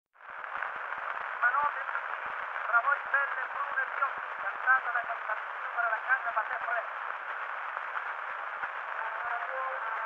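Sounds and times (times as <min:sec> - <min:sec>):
record surface hiss and crackle: 0:00.1 - 0:10.0.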